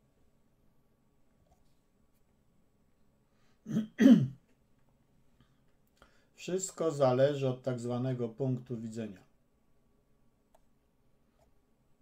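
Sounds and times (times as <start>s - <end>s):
man clearing his throat: 3.7s - 4.4s.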